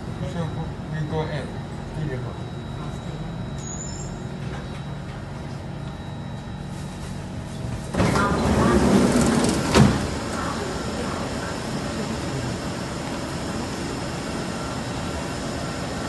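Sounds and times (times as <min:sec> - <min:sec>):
train low hum: 0:00.0 - 0:16.0
doors sliding open with thud: 0:07.9 - 0:10.3.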